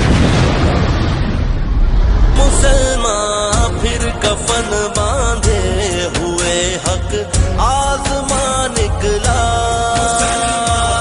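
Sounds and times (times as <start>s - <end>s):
loud explosion rumble: 0.0s - 6.1s
music: 2.3s - 11.0s.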